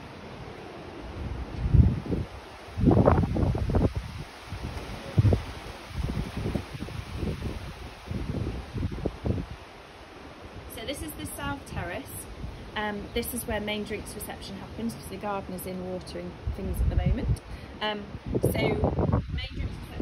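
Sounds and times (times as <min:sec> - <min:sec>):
wind buffeting microphone: 0:00.0 - 0:20.0
wind rustling trees: 0:00.0 - 0:20.0.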